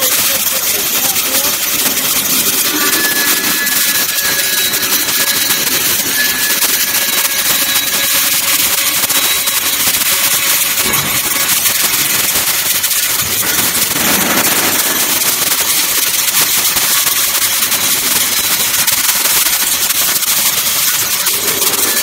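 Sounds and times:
cutter chipping steel crackle: 0.0s - 22.0s.

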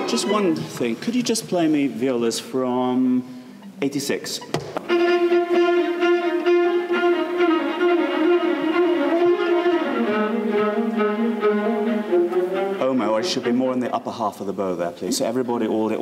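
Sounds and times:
violas playing bowed notes: 0.0s - 1.0s, 3.0s - 14.2s.

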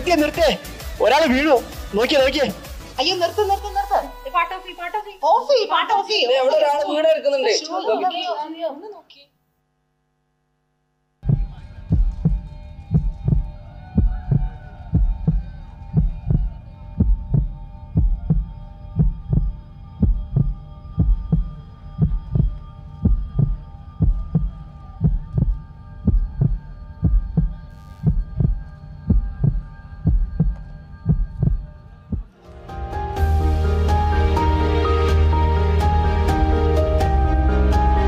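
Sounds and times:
heartbeat thumps: 11.2s - 32.3s
electronic drone: 11.3s - 32.3s.

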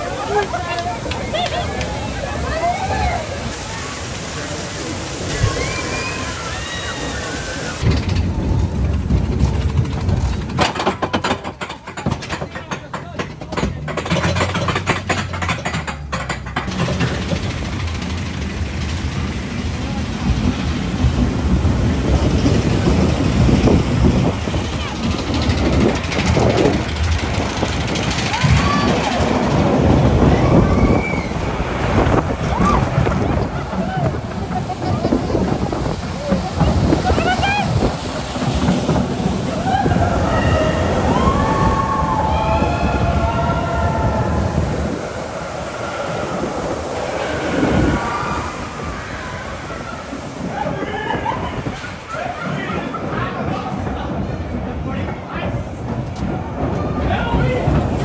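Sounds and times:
riders screaming and whooping: 0.0s - 12.2s, 21.6s - 54.4s, 55.4s - 58.0s
wind noise on microphone: 0.0s - 12.4s, 16.6s - 58.0s
roller coaster train on track: 0.0s - 58.0s.

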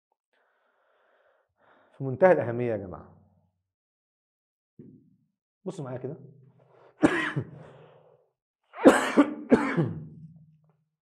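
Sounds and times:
man coughing: 7.0s - 7.7s, 8.8s - 10.1s.

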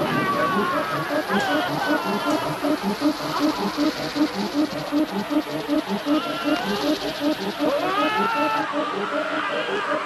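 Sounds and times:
insects buzzing and chittering: 0.0s - 10.0s
pulsing beat: 0.0s - 10.0s
man's wavering cries: 7.8s - 8.9s.

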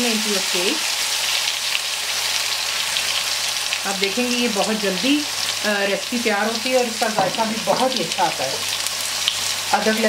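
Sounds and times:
onion paste sizzling in oil: 0.0s - 10.0s.

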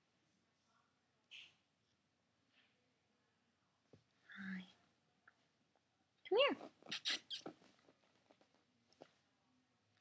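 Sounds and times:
sharp mouth sounds: 6.9s - 7.5s.

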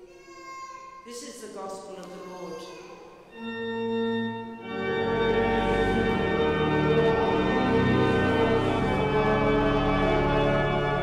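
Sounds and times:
pipe organ playing sustained chords: 3.3s - 11.0s.

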